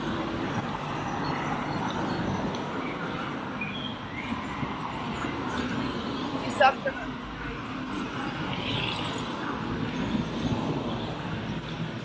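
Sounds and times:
cars passing on street: 0.0s - 12.0s.

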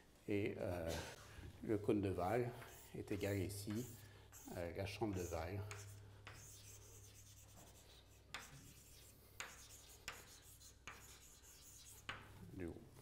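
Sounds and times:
chalk scratching on blackboard: 2.5s - 12.4s.

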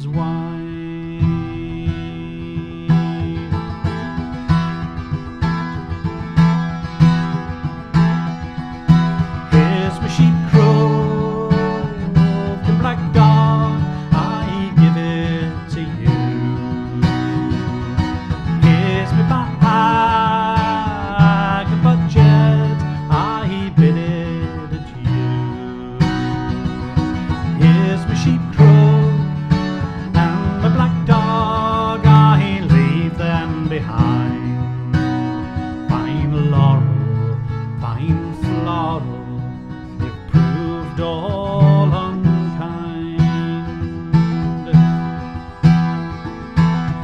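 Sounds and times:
person singing: 0.0s - 4.3s, 9.3s - 26.6s, 27.2s - 34.8s, 35.7s - 45.6s
acoustic guitar playing: 0.0s - 47.0s.

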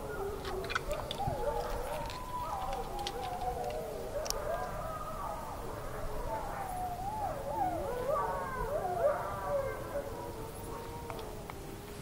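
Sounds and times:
wolves howling: 0.0s - 12.0s.

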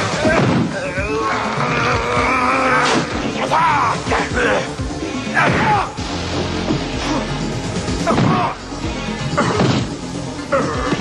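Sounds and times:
dramatic music score: 0.0s - 11.0s.

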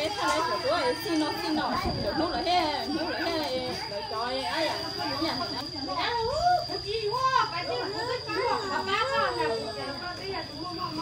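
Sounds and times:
women and children chattering: 0.0s - 11.0s.

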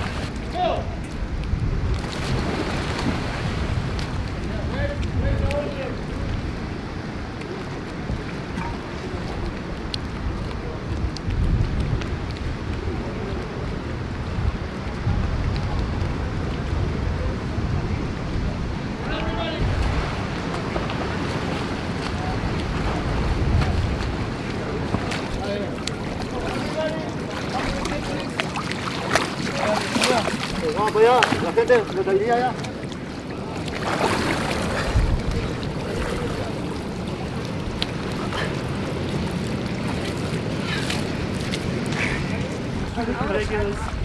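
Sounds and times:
water lapping and splashing: 0.0s - 44.0s
wind rumbling on microphone: 0.0s - 44.0s
faint voices: 12.5s - 44.0s.

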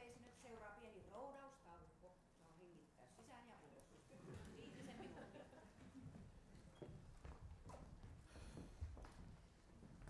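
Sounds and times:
footsteps on stage floor: 6.0s - 10.0s.

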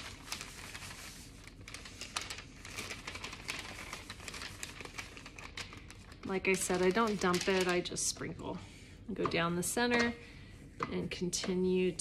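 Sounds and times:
parchment paper rustling: 0.0s - 10.6s.

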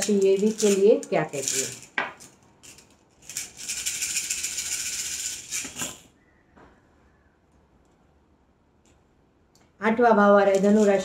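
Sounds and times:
shells rattling in cupped hands: 0.0s - 6.1s, 10.5s - 11.0s.

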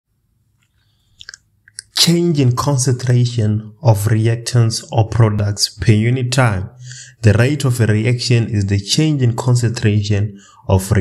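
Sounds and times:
mouth clicks and lip smacks: 0.6s - 2.0s.

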